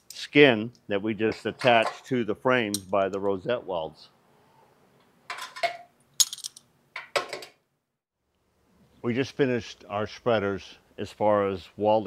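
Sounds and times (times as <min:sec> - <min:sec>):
metal clinks and scrapes: 0:05.3 - 0:06.7.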